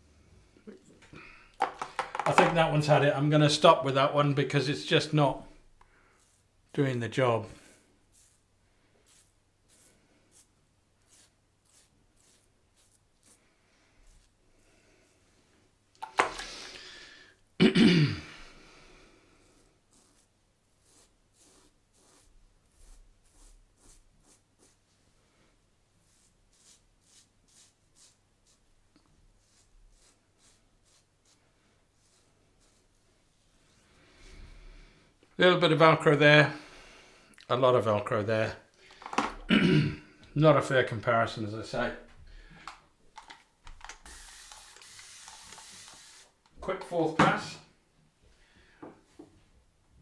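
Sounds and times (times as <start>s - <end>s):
razor scraping stubble: 6.1s - 13.4s, 19.9s - 24.8s, 29.4s - 31.4s.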